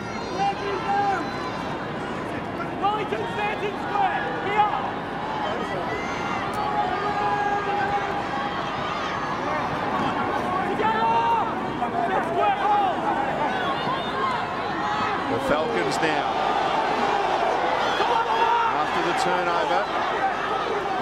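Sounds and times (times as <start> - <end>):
stadium crowd shouting: 0.0 - 21.0.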